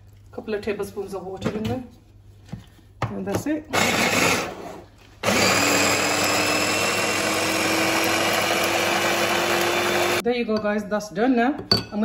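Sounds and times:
electric chopper motor: 5.2s - 10.2s.

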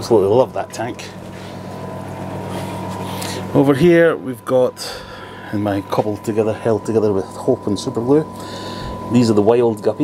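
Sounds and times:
aquarium air pumps humming: 0.0s - 10.0s.

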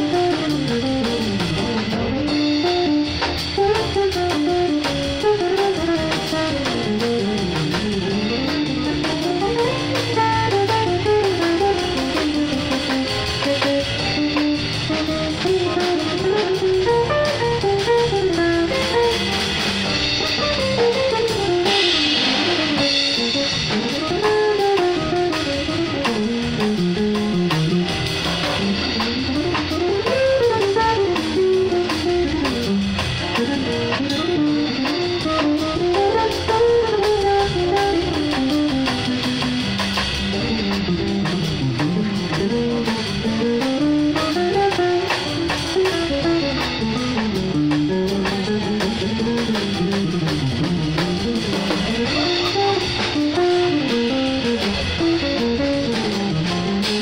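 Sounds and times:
drum kit with cymbals: 0.0s - 57.0s
electric guitar melody: 0.0s - 57.0s.

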